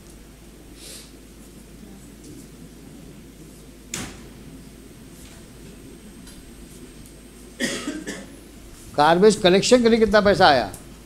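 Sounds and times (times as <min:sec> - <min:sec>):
person coughing: 0:07.6 - 0:08.4.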